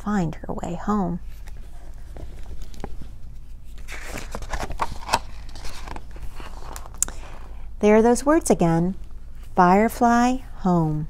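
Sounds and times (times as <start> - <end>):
book pages turning: 1.3 - 7.6.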